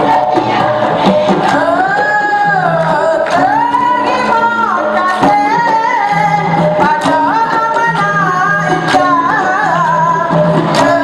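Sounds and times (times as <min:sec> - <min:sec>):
sharp percussive strikes: 0:00.0 - 0:11.0
woman singing into a microphone: 0:00.0 - 0:11.0.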